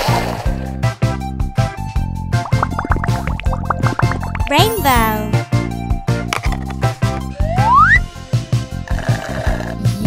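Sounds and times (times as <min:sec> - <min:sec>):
bouncy children's song music: 0:04.5 - 0:05.5.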